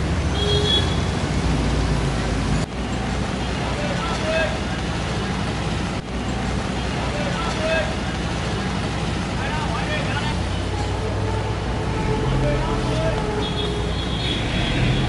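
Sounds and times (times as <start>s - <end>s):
low hum of traffic: 0.0s - 15.0s.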